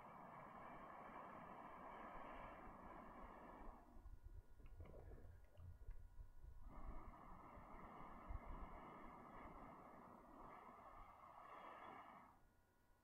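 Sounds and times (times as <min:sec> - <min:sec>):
person blowing breathy rushing: 0:00.0 - 0:05.4, 0:06.6 - 0:12.5.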